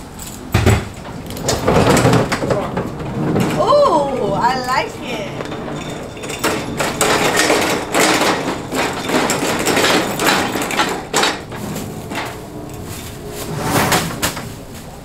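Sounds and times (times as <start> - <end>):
potted tree scraping and knocking: 11.4 - 15.0.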